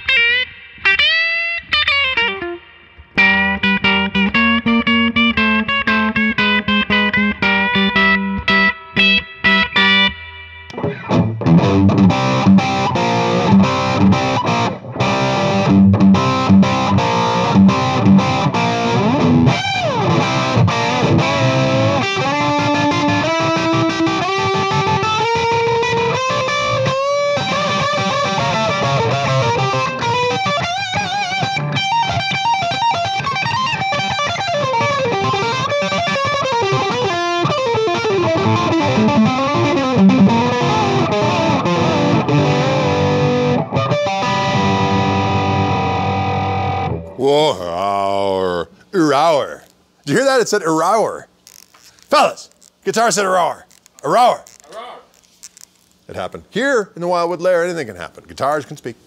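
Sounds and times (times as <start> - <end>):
electric guitar lead solo: 0.0 - 48.6.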